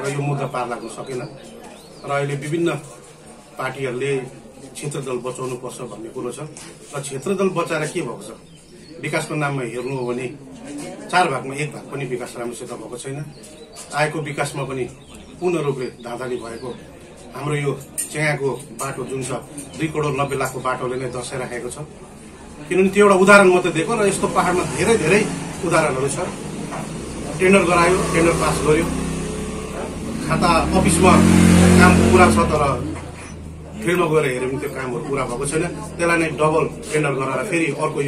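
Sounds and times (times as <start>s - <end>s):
man speaking: 22.6s - 26.4s, 27.2s - 29.0s, 30.1s - 33.1s, 33.7s - 38.0s
vehicle engine droning: 22.9s - 37.2s
bird calling: 32.3s - 33.9s.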